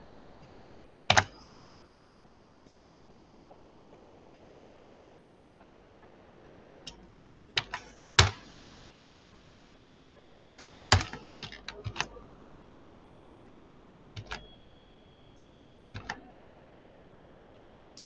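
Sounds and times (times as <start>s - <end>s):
computer keyboard typing: 1.1s - 1.4s, 7.6s - 8.4s, 10.9s - 12.2s, 14.2s - 14.5s, 16.0s - 16.2s.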